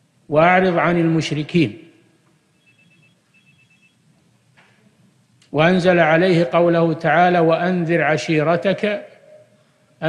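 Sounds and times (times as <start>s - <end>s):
faint high electronic beeping: 2.5s - 4.0s.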